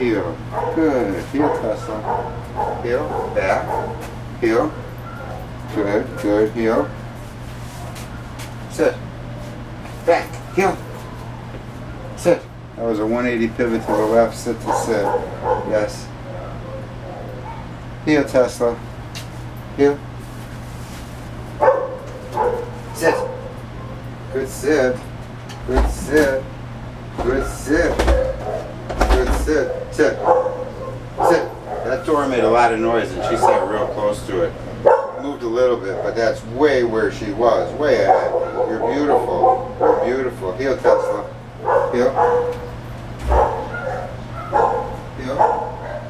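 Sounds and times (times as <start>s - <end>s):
steady low hum: 0.0s - 46.0s
dog barking: 0.5s - 5.5s, 13.8s - 17.7s, 21.6s - 24.0s, 27.3s - 28.8s, 29.6s - 36.4s, 37.8s - 46.0s.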